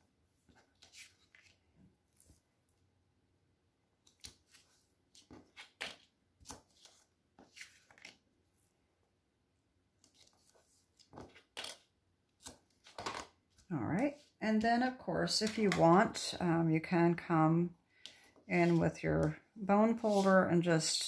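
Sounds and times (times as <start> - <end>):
paper and tape rustling: 20.1 - 20.4.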